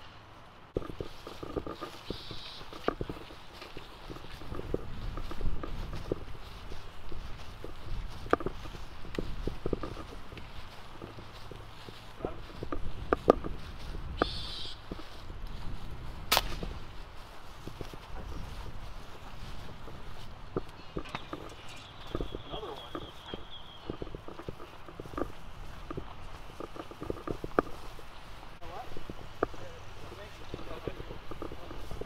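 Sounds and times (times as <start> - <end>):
footsteps on grass and paving: 0.0 - 32.0
sharp crack: 16.3 - 16.8.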